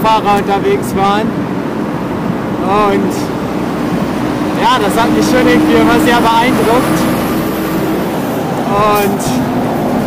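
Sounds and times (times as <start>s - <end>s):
low vehicle hum: 0.0s - 10.0s
road traffic noise: 0.0s - 10.0s.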